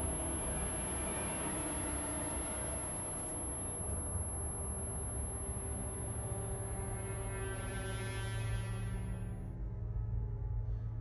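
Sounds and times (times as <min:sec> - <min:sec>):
dark droning film score: 0:00.0 - 0:11.0.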